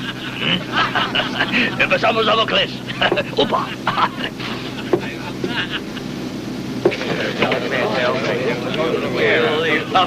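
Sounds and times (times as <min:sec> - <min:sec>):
steady low hum: 0:00.0 - 0:10.0
voices murmuring: 0:00.0 - 0:10.0.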